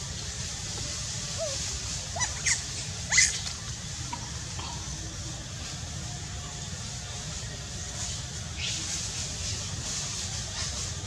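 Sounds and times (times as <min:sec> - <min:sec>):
young macaque squeaking: 0:02.2 - 0:03.5.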